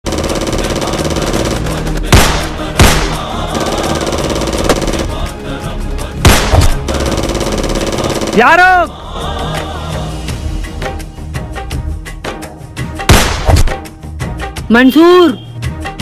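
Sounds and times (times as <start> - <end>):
background music: 0.0 - 16.0
gunshots: 0.1 - 5.2, 6.2 - 8.7, 13.1 - 13.8.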